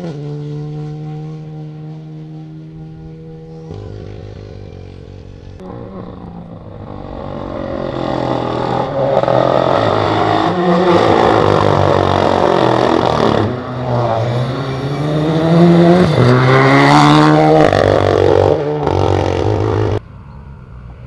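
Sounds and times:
rally car engine accelerating: 0.0 - 20.0.

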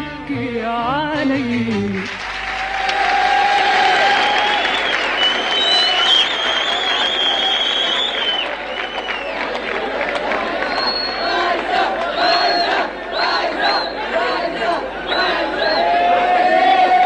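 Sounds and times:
woman singing: 0.0 - 2.1
audience applause: 2.0 - 17.0
crowd cheering and shouting: 2.4 - 17.0.

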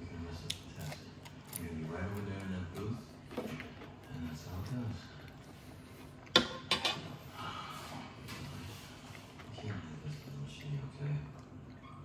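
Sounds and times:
chewing crisp salad: 0.2 - 6.4.

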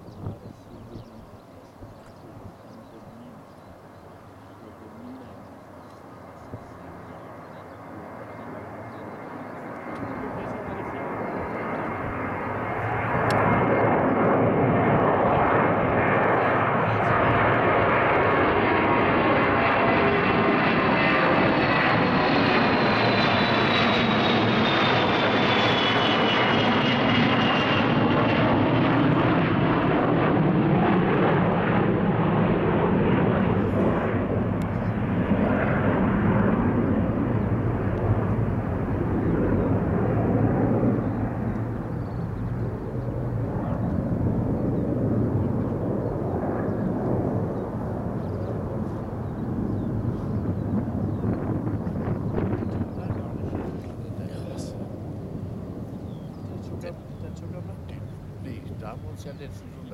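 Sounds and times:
jet aircraft passing low: 0.0 - 59.9.

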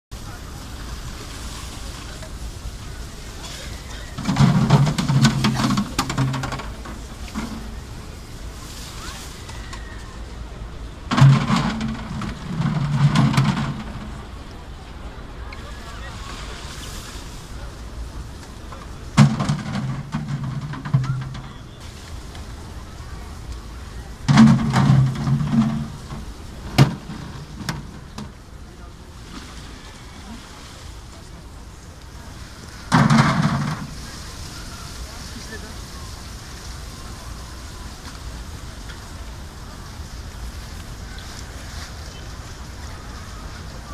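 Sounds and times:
plastic containers clattering: 4.2 - 7.7, 11.1 - 14.4, 19.2 - 21.7, 24.3 - 28.4, 32.9 - 34.1.

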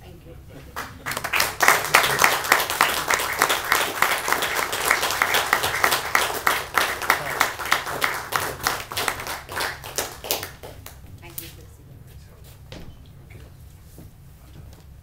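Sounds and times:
audience applauding: 0.8 - 11.0.

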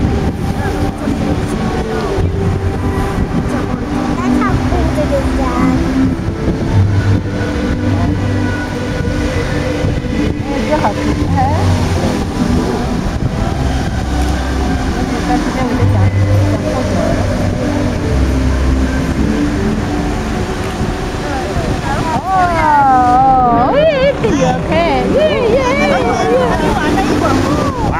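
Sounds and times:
fountain jets spraying: 0.0 - 27.9
low bass notes: 0.0 - 27.9
music over outdoor loudspeakers: 0.0 - 27.9
singing voice with wide vibrato: 0.0 - 27.9.

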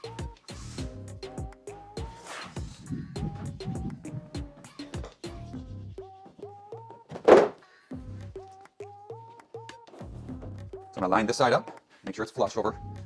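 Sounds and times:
music with plucked beat: 0.0 - 7.1, 8.0 - 11.9
laminate sheet thunk on worktop: 7.1 - 7.6.

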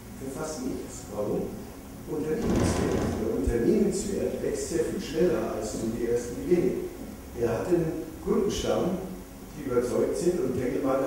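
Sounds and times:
man speaking into a microphone: 0.2 - 11.0.

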